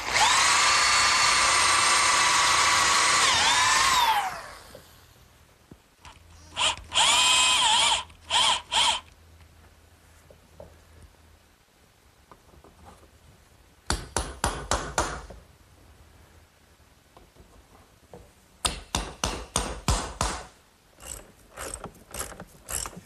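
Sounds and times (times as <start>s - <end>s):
ratchet wrench clicking: 21.0s - 23.0s.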